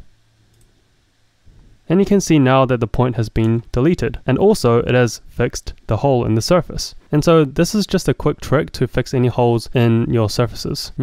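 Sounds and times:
steady low hum: 0.0 - 11.0
person speaking: 1.8 - 11.0.

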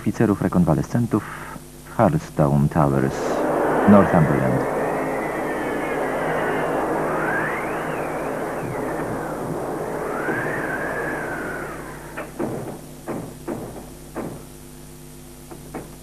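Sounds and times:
howling wind gust: 2.8 - 12.9
sharp knocks: 12.2 - 14.5.

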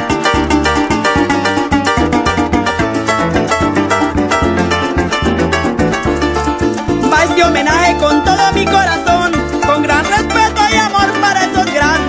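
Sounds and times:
harp plucked runs: 0.0 - 11.9
repeating bass line: 0.0 - 12.0
strummed rhythm: 0.0 - 12.0.

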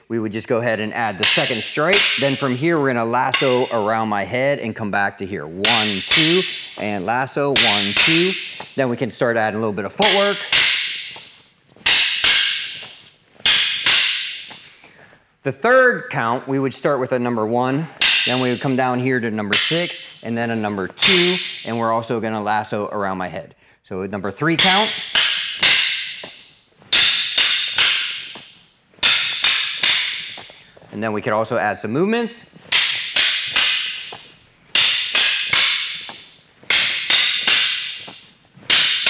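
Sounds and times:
wooden sticks clacking with echo: 0.8 - 4.6, 5.2 - 15.0, 17.8 - 22.2, 24.4 - 30.8, 32.2 - 39.0.

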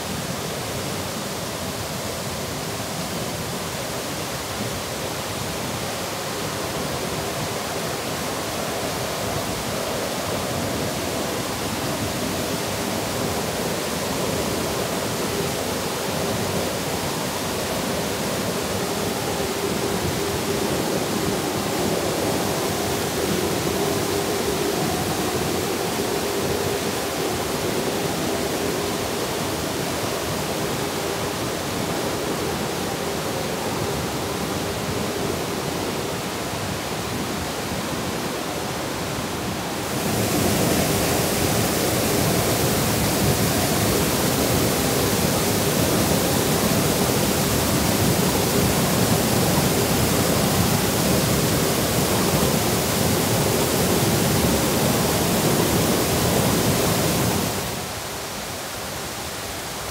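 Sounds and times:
stream rushing over rocks: 0.0 - 59.9.

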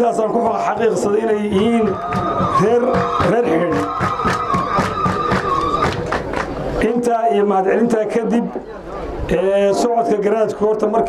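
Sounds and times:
rhythmic hand clapping: 1.6 - 6.8.

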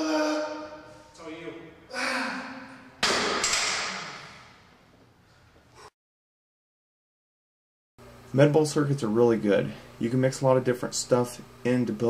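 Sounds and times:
person straining: 1.9 - 2.8.

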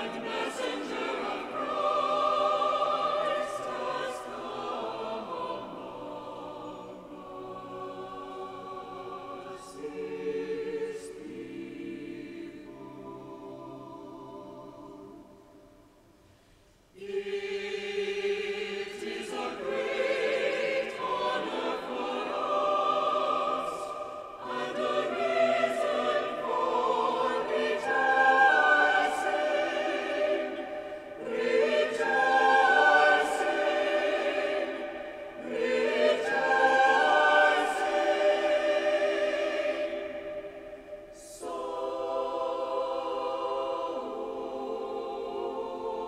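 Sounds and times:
choir singing: 0.0 - 16.0, 17.0 - 46.0.

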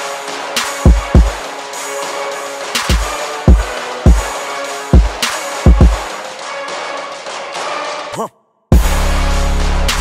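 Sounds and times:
electronic background music: 0.0 - 10.0.

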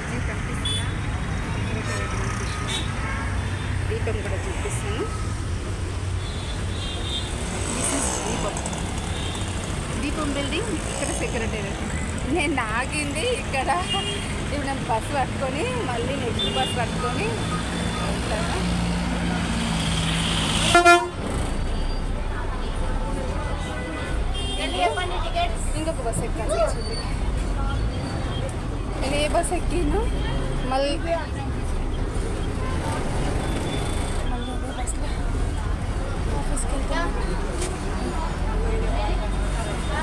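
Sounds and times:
voices talking: 0.0 - 6.1, 6.8 - 20.2, 21.4 - 40.0
road traffic: 0.0 - 40.0
bus engine rumble: 7.4 - 40.0.

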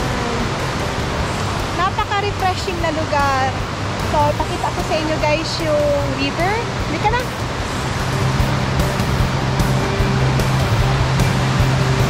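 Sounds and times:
whitewater rapids rushing: 0.0 - 12.0
background music with beat: 7.1 - 12.0.

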